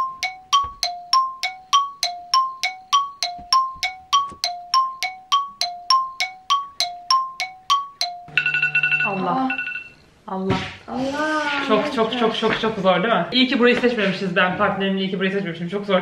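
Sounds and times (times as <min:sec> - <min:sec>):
repeating two-note chime: 0:00.0 - 0:09.9.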